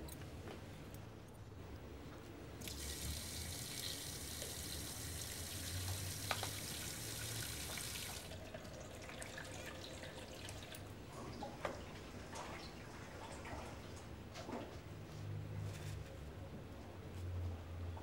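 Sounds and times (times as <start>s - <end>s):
tap water running into metal tank: 2.6s - 10.9s.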